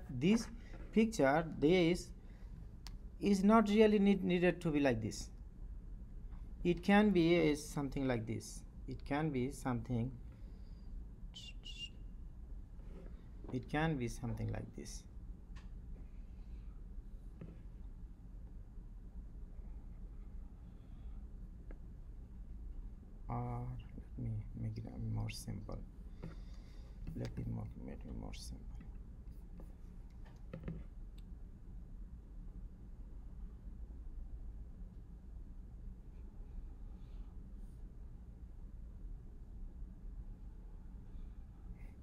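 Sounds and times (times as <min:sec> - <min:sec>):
faint low hum: 0:00.0 - 0:42.0
faint clicks and taps: 0:28.0 - 0:31.3.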